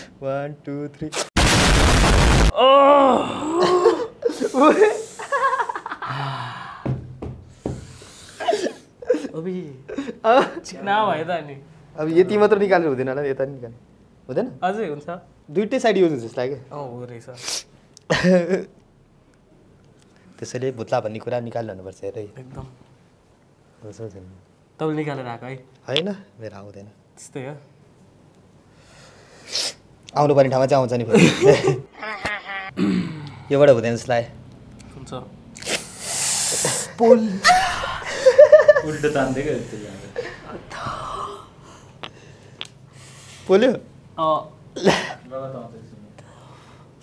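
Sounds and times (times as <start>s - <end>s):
man laughing breathlessly: 3.5s - 6.9s, 36.5s - 40.6s
man sneezing: 8.3s - 9.4s, 32.8s - 33.2s.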